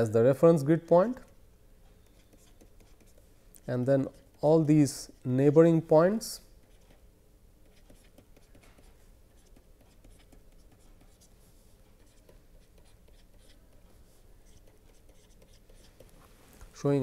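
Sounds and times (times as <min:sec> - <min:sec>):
stylus scratching on pen tablet: 0:01.0 - 0:05.6, 0:06.6 - 0:07.0, 0:07.6 - 0:16.1.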